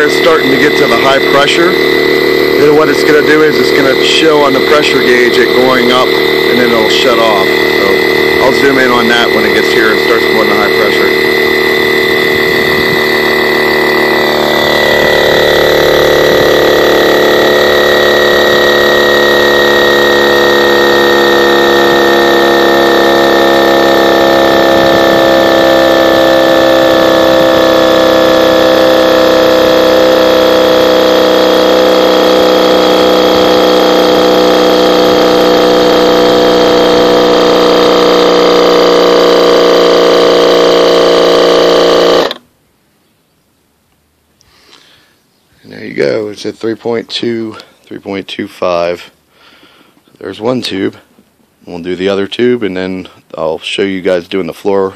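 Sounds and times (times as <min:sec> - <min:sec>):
electric air pump running: 0:00.0 - 0:42.4.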